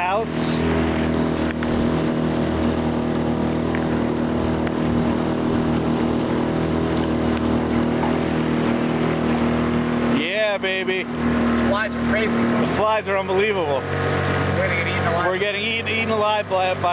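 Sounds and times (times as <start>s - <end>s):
outboard motor running: 0.0s - 16.9s
rushing water and wind: 0.0s - 16.9s.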